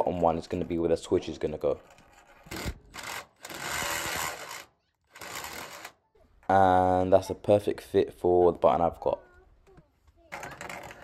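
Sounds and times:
drill cutting through plastic: 0:02.5 - 0:06.0.

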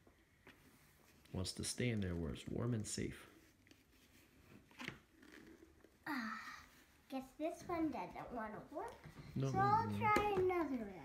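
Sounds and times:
person sighing: 0:06.0 - 0:06.7.

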